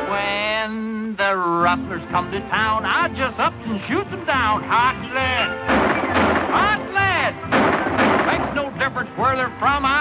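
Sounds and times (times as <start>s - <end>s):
man singing: 0.0s - 5.6s
comic western song: 0.0s - 10.0s
gunshots: 5.7s - 8.7s.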